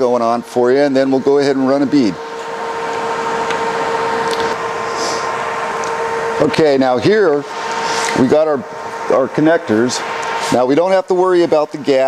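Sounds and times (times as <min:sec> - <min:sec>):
cooling fan running: 0:00.0 - 0:12.0
welder whirring hum: 0:00.0 - 0:12.0.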